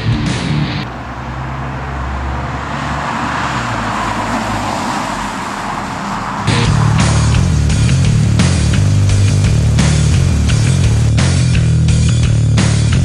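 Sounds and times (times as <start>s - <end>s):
music: 0.0s - 0.9s, 6.5s - 13.0s
car engine passing: 0.0s - 12.0s.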